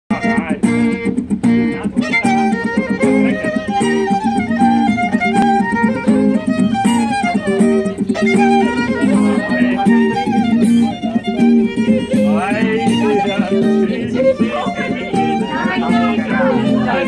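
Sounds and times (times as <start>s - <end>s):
acoustic guitar accompaniment: 0.1s - 17.0s
violin playing a melody: 2.0s - 17.0s.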